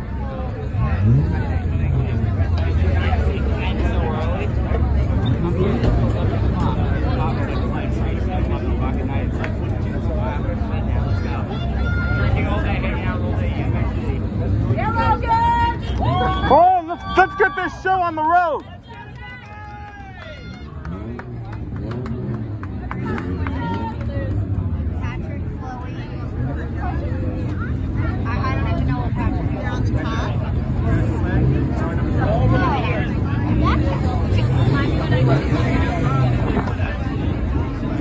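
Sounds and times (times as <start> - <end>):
car engines droning: 0.0 - 38.0
crowd chatter: 0.0 - 38.0.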